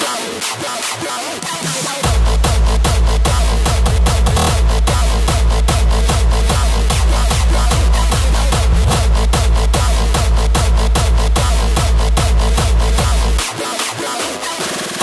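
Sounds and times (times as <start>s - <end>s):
hardstyle dance music: 0.0s - 15.0s.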